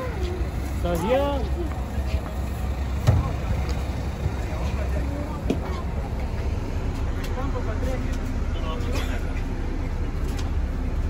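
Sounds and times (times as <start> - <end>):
bus diesel engine idling: 0.0 - 11.0
faint voices: 0.0 - 11.0.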